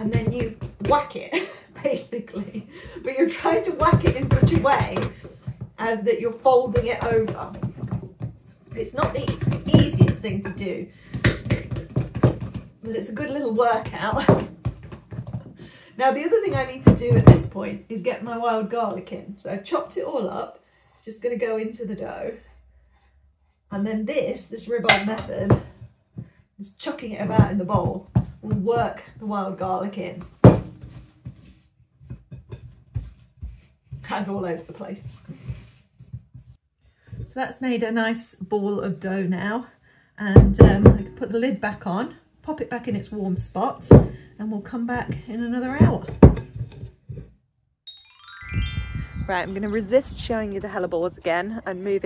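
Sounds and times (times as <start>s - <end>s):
dough slapping wet thuds: 0.0s - 1.4s, 6.5s - 15.6s
dough slapped in bowl thuds: 24.9s - 25.3s.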